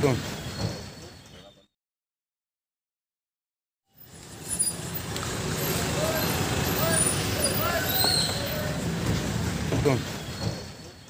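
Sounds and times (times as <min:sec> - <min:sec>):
traffic rumble: 0:00.0 - 0:01.6, 0:04.0 - 0:11.0
distant voices: 0:04.2 - 0:11.0.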